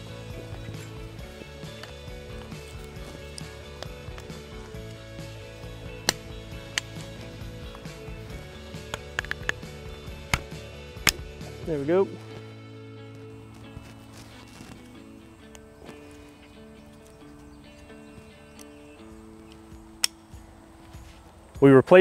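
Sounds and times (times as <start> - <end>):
background music: 0.0 - 22.0
plastic insulator clicks and snaps: 8.8 - 11.2, 19.5 - 20.2.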